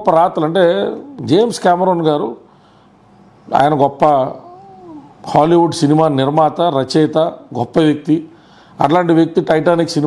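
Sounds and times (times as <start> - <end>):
man speaking: 0.0 - 2.5, 3.5 - 10.0.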